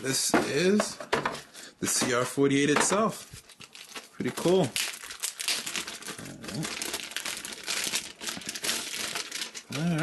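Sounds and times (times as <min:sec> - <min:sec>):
plastic bag crinkling: 0:03.1 - 0:10.0.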